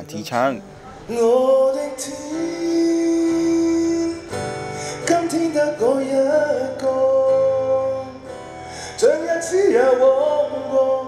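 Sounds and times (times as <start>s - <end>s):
acoustic guitar strumming: 0.0s - 11.0s
man singing: 1.0s - 11.0s.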